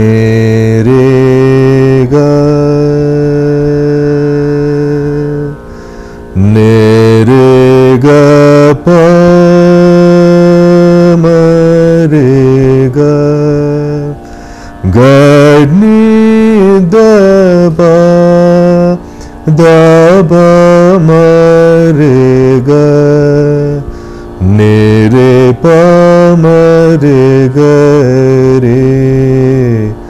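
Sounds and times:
man singing long held notes: 0:00.0 - 0:30.0.

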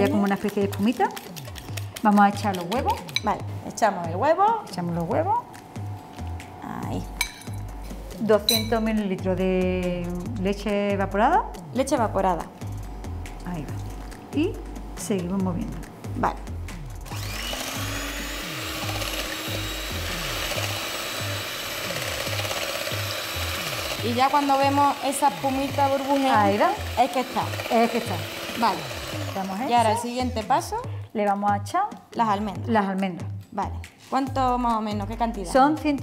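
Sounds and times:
electric hand mixer whisking batter: 0:00.0 - 0:03.2, 0:17.1 - 0:30.7
metallic clink on steel bowl: 0:07.2 - 0:07.6, 0:08.5 - 0:08.8
background music with bass beat: 0:11.0 - 0:17.1.

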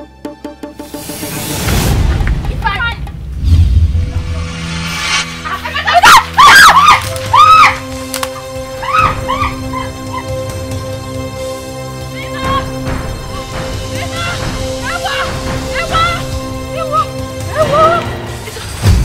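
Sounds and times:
film score held tones: 0:00.0 - 0:19.0
woman screaming: 0:05.7 - 0:07.9, 0:08.8 - 0:10.4, 0:12.1 - 0:12.8, 0:14.2 - 0:18.2.

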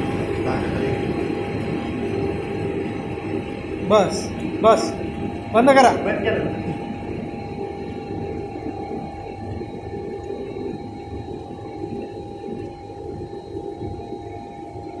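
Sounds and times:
machine hum: 0:00.0 - 0:15.0.

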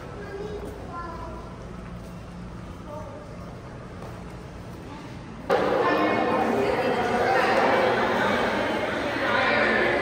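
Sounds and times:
echoing voices and chatter: 0:00.0 - 0:10.0.

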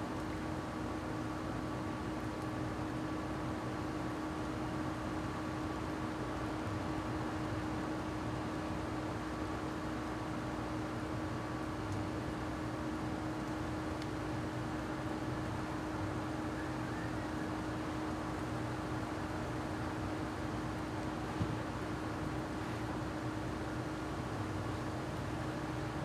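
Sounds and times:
constant low hum: 0:00.0 - 0:26.0.

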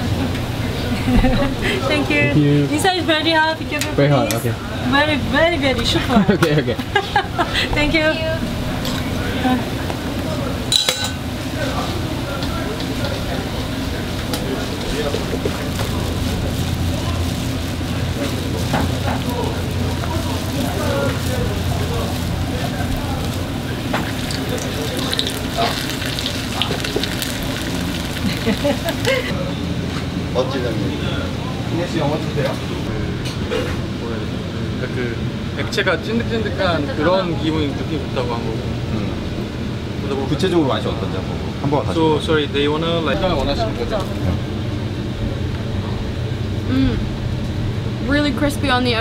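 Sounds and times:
street background rumble: 0:00.0 - 0:49.0
pancakes sizzling in hot oil: 0:14.3 - 0:29.2
low hum: 0:43.2 - 0:49.0.

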